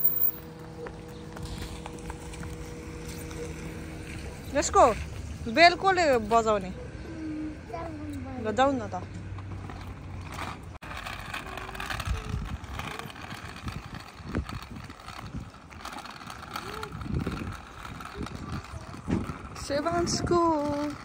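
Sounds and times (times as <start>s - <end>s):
outdoor noise: 0.0s - 21.0s
scooter wheels rolling on tarmac: 0.0s - 21.0s.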